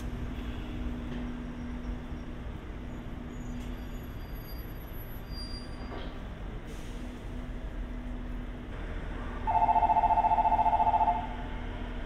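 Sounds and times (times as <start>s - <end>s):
electronic two-tone trill bell: 9.5s - 11.3s.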